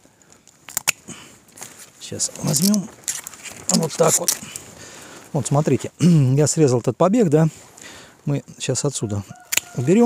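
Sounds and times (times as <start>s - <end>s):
pruning shears clicking: 9.5s - 9.8s.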